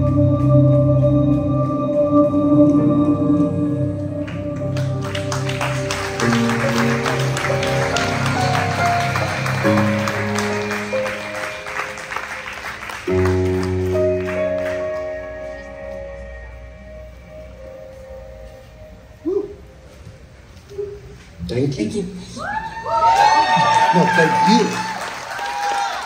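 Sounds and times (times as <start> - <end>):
ambient synthesizer chords: 0.0 - 21.2
audience applause: 4.7 - 15.6, 22.8 - 26.0.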